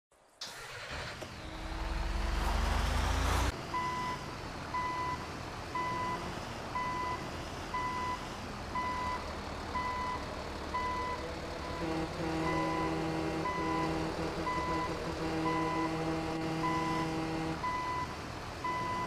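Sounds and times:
vehicle engine revving: 0:00.4 - 0:03.6, 0:10.8 - 0:17.8
reversing alarm beeping: 0:10.8 - 0:19.0.

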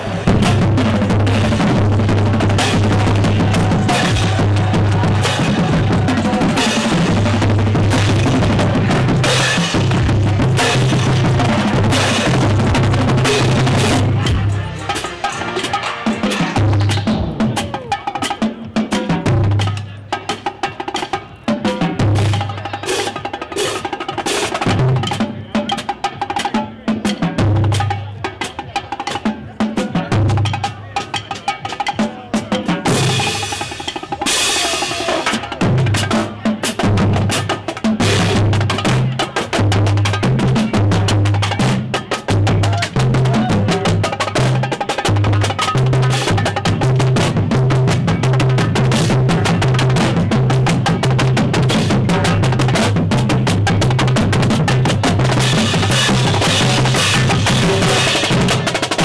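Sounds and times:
marching drumline cadence: 0:00.0 - 0:59.0.

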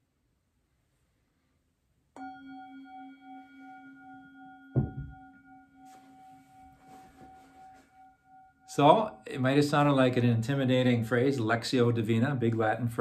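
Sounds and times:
singing bowl ringing: 0:02.2 - 0:10.0
short thump: 0:04.8 - 0:05.2.

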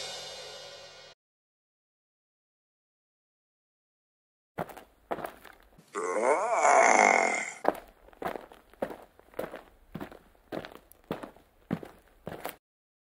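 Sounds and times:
light stop-motion footsteps: 0:04.6 - 0:05.8, 0:07.6 - 0:12.6
pitch-dipping grunt sound effect: 0:05.9 - 0:07.6.

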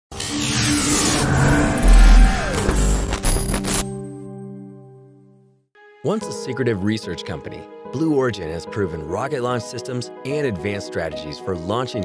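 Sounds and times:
whooshing rush: 0:00.8 - 0:03.9.

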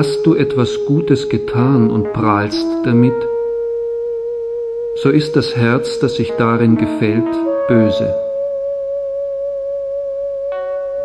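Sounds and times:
music holding a steady note: 0:00.0 - 0:11.0.

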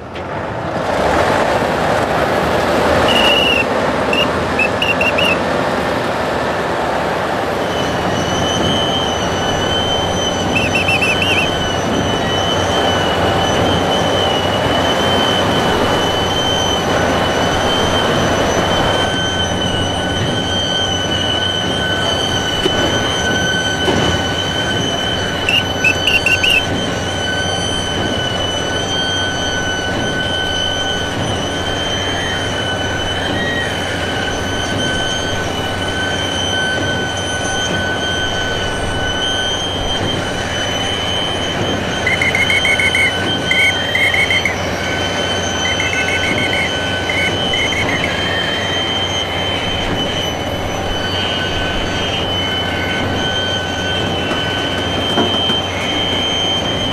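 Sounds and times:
high metallic squeal: 0:02.9 - 0:05.6, 0:07.1 - 0:56.9
lower metallic squeal: 0:02.9 - 0:06.4, 0:07.1 - 0:56.9
higher squeaking flutters: 0:03.0 - 0:05.5, 0:07.6 - 0:56.9.

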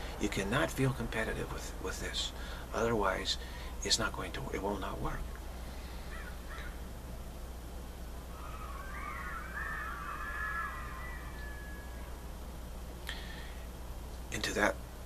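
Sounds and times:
steady low hum: 0:00.0 - 0:15.0
bird warbling call: 0:06.0 - 0:06.8, 0:08.3 - 0:12.4.

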